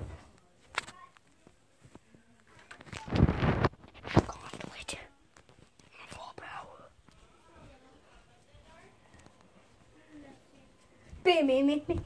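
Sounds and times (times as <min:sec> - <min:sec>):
soft whispering: 0:01.0 - 0:11.2.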